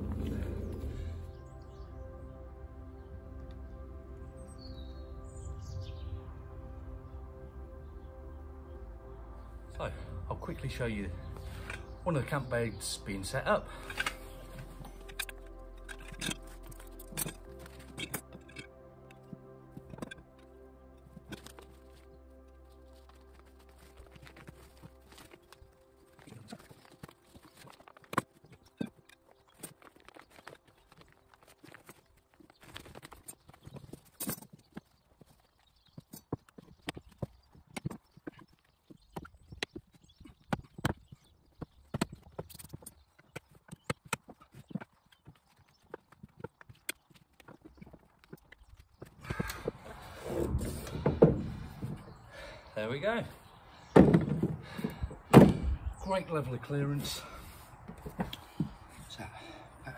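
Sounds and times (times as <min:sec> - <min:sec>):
camp bed frame clicking and knocking: 0:53.9 - 0:55.8.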